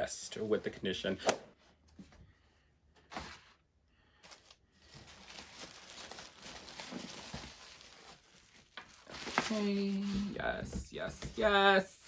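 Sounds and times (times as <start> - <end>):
short swish: 1.2 - 1.6.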